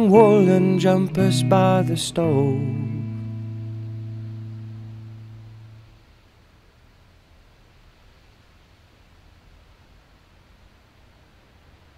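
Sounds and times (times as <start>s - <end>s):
electric guitar chord ringing: 0.0s - 6.0s
faint steady hiss: 0.0s - 11.9s.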